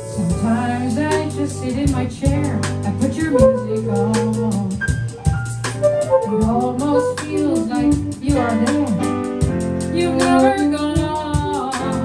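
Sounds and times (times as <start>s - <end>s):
jazz band playing: 0.0s - 12.0s.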